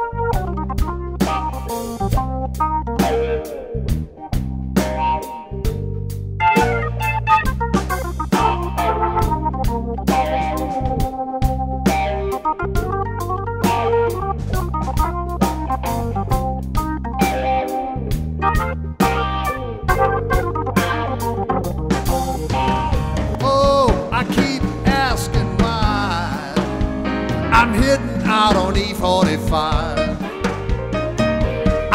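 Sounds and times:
electric guitar: 0.0s - 31.9s
hammond organ chords: 0.0s - 31.9s
sustained low bass: 0.0s - 31.9s
drum kit steady beat: 0.3s - 31.9s.

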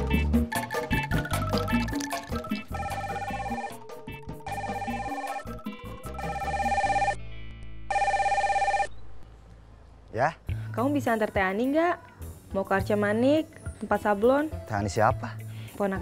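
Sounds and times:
background music: 0.0s - 9.2s, 10.2s - 16.0s
mobile phone trilling ring tone: 1.9s - 7.2s, 7.9s - 8.9s.

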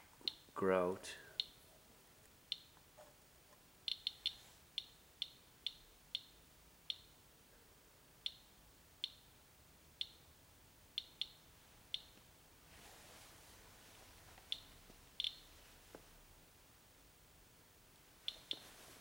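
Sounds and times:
geiger counter clicking: 2.5s - 2.8s, 3.8s - 7.2s, 8.2s - 9.3s, 10.9s - 12.3s, 14.5s - 15.5s.

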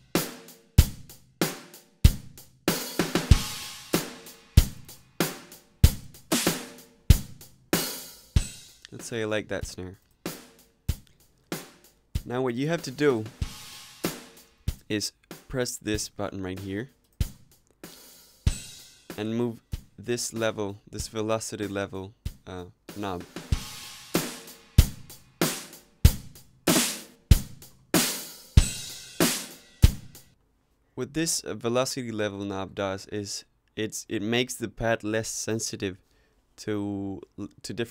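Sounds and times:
drum hits: 0.0s - 8.8s, 10.3s - 16.1s, 22.3s - 30.3s.

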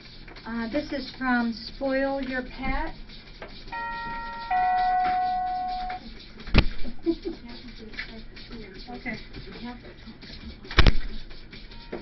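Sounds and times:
two-note doorbell chime: 3.8s - 6.0s.

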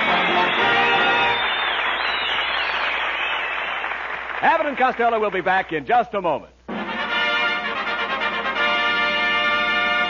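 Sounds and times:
studio audience applauding: 0.0s - 5.6s.

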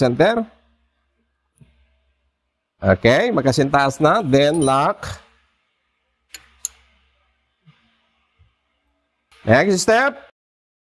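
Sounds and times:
sharp metallic clicks: 6.3s - 6.9s.

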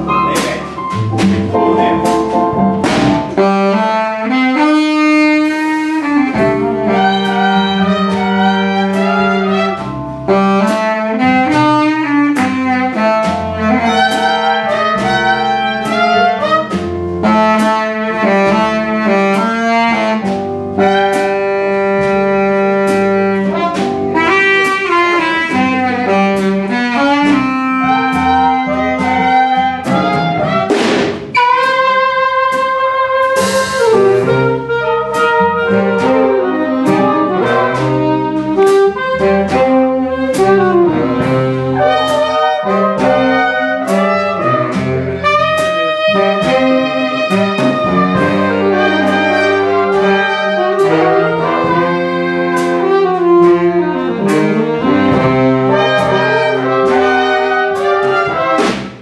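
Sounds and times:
jazz big band playing: 0.0s - 59.0s.

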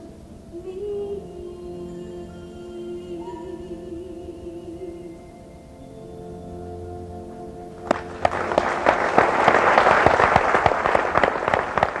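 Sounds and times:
music: 0.0s - 11.3s
audience applauding: 7.8s - 12.0s.

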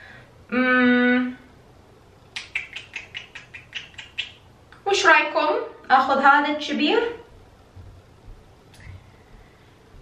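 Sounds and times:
woman humming mmm: 0.5s - 1.5s.

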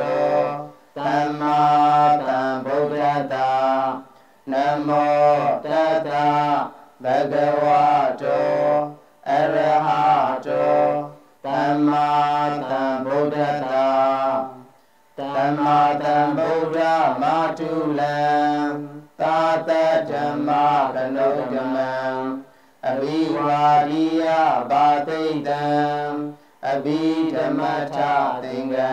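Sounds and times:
person chanting: 0.0s - 28.9s
short breaths: 0.7s - 1.0s, 4.1s - 4.5s, 14.7s - 15.2s, 22.4s - 22.8s, 26.3s - 26.6s.

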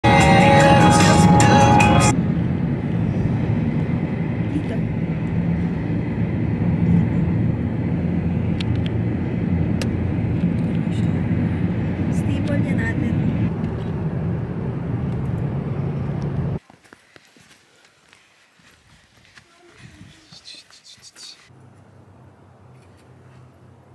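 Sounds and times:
car cabin road and engine rumble: 0.0s - 16.6s.

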